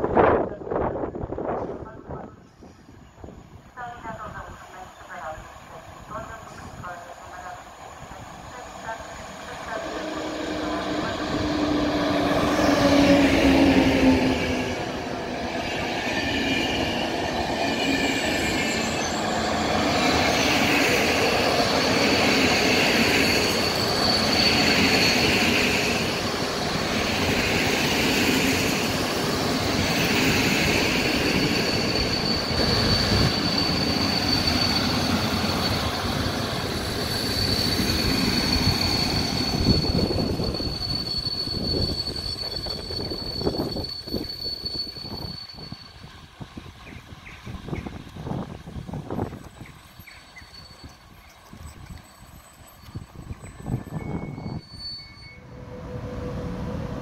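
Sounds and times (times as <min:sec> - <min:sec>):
train wheels rumbling and clattering: 0:08.8 - 0:55.0
high thin wheel squeal: 0:17.6 - 0:27.5, 0:28.1 - 0:46.1, 0:49.5 - 0:56.4.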